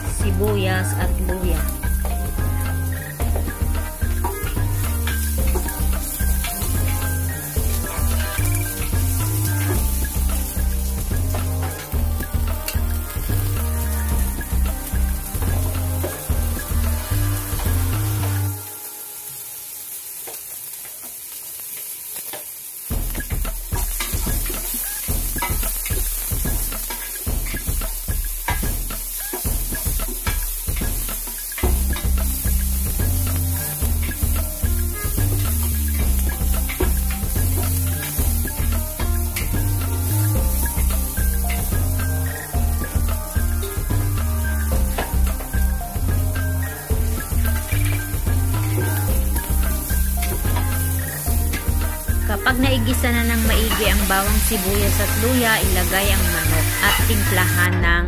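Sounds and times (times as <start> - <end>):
music with heavy bass beat: 0.0 - 18.6, 22.9 - 58.0
food sizzling in hot oil: 0.0 - 57.7.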